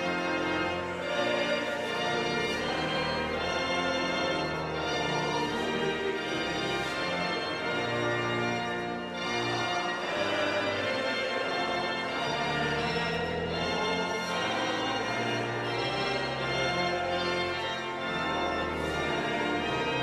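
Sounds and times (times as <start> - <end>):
congregation singing: 0.0 - 20.0
pipe organ playing: 0.0 - 20.0.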